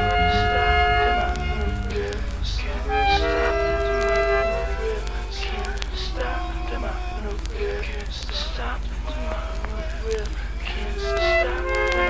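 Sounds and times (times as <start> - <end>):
music with pulsing bass: 0.0 - 6.0
train horn chord: 0.0 - 6.6, 11.0 - 12.0.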